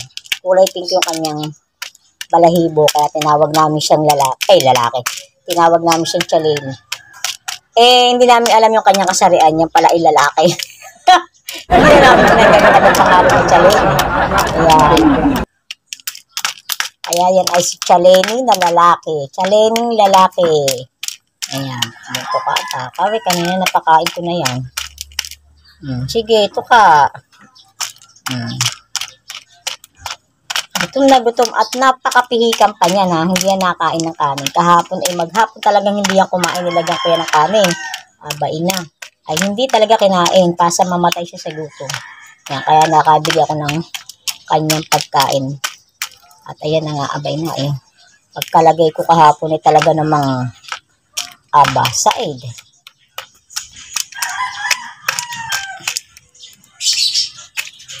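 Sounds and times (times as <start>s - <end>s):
beak tapping on plastic dish: 0.0s - 58.0s
rooster crowing: 54.2s - 55.9s.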